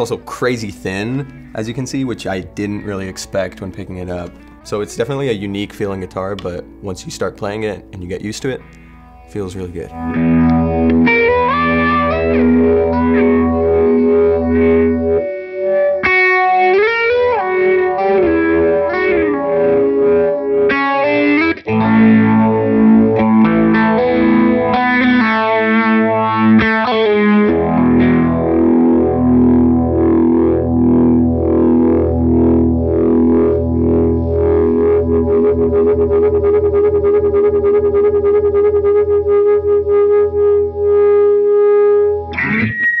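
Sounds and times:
electric guitar through amplifier: 0.0 - 43.0.

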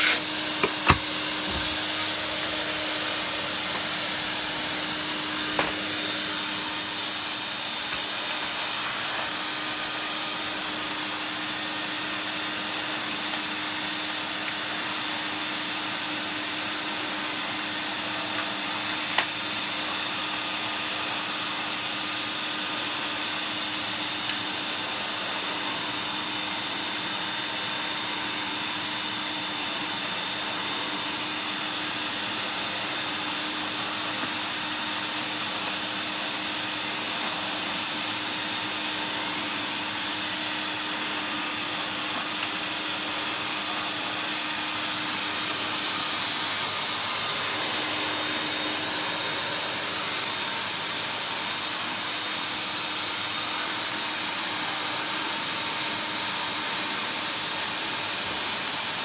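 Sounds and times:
vacuum cleaner running: 0.0 - 59.0.

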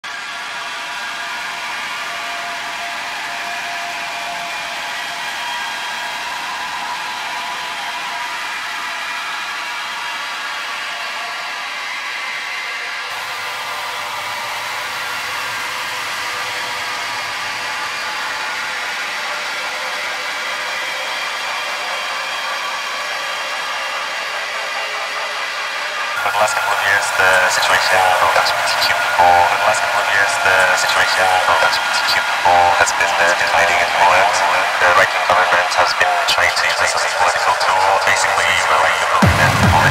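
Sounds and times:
dense wash of noise: 26.2 - 39.9
faint high drones: 26.2 - 39.9.

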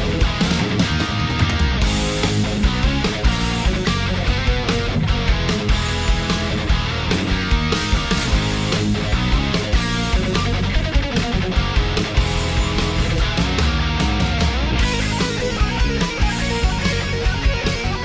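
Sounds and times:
distorted electric guitar: 0.0 - 18.0
drum beat: 0.0 - 18.0.

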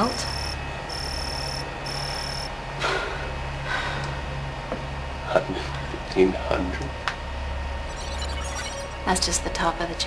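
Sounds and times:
low electronic drone: 7.8 - 10.0
high thin pulsing tone: 7.9 - 9.3.

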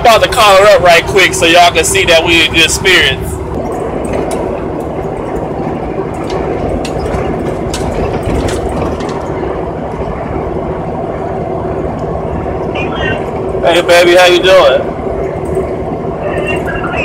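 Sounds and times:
diesel engine hum inside truck cab: 0.0 - 17.0.

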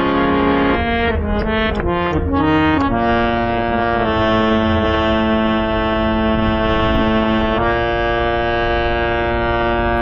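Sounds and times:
harmonium holding a chord: 0.0 - 10.0.

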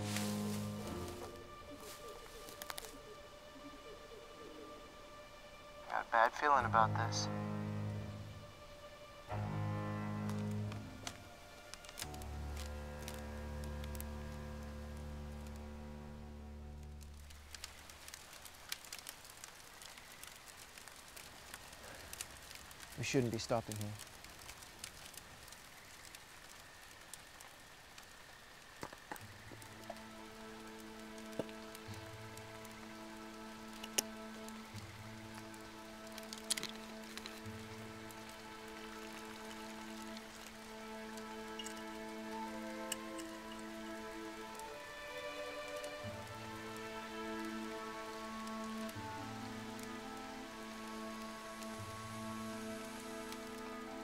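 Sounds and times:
campfire crackling and popping: 0.0 - 54.0
quiet film score: 0.0 - 54.0.

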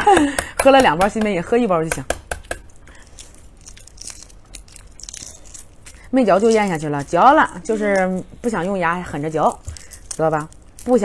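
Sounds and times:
egg shell cracking: 0.0 - 11.0.

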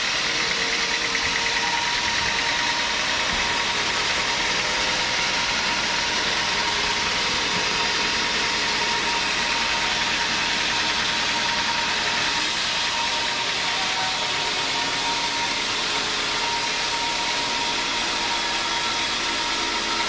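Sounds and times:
band saw cutting log: 0.0 - 20.0.

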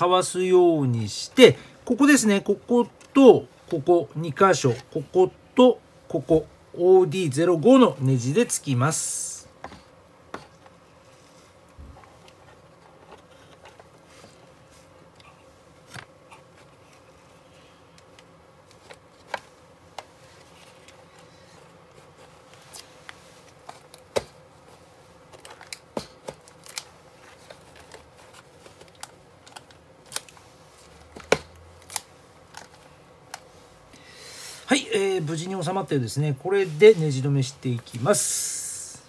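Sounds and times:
faint steady hum: 0.0 - 39.0.

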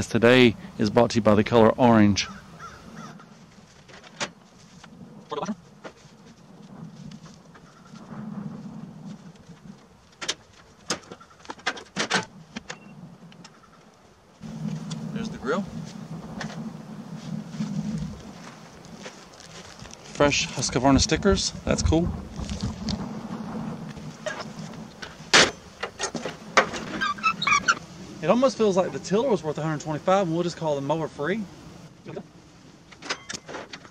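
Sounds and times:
low hum: 14.4 - 30.5
gear clanking on metal trailer: 24.2 - 27.8.

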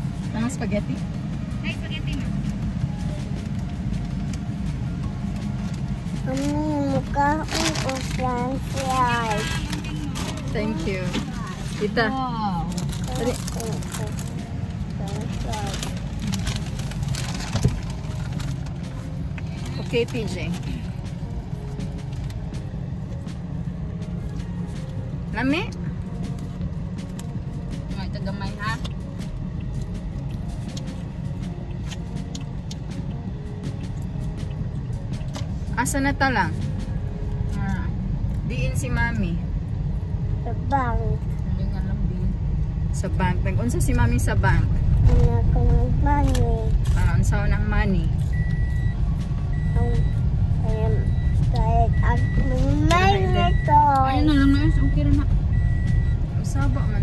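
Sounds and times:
car cabin low rumble: 0.0 - 57.0.

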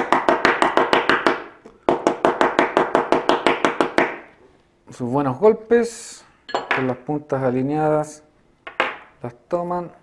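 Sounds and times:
metal hair stacker tapping: 6.5 - 6.9.

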